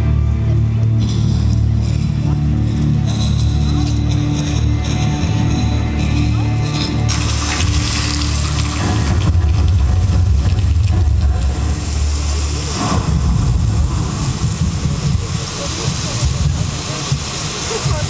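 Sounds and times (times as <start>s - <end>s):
crowd voices: 0.0s - 18.0s
deep rumbling soundtrack over loudspeakers: 0.0s - 18.0s.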